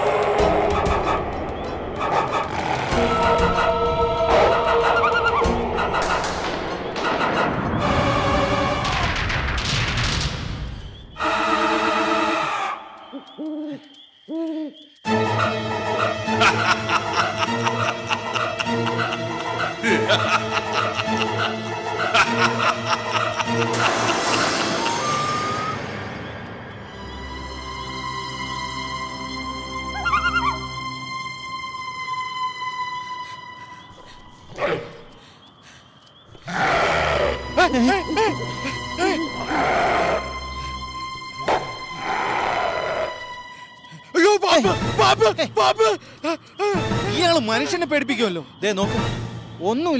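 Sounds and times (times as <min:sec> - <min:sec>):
owl hooting: 0:11.1 - 0:16.7, 0:29.9 - 0:30.8
loud harsh animal roar: 0:36.4 - 0:37.5, 0:39.4 - 0:40.3, 0:41.9 - 0:43.2.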